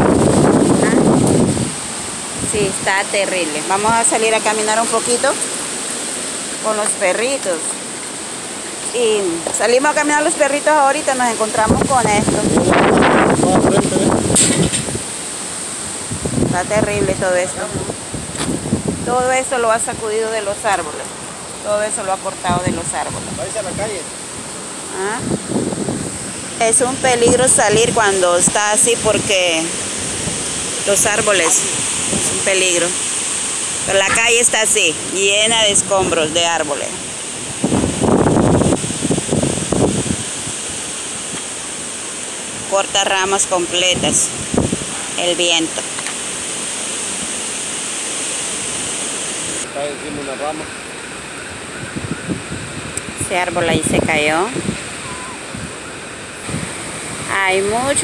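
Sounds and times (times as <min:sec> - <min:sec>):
wind buffeting microphone: 0:00.0 - 0:06.1, 0:11.0 - 0:41.5, 0:43.7 - 0:45.6, 0:51.5 - 0:58.0.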